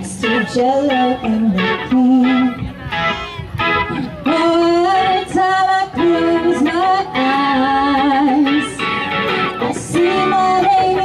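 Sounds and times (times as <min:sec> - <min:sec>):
electric guitar: 0:00.0 - 0:11.0
woman singing into a microphone: 0:00.0 - 0:11.0.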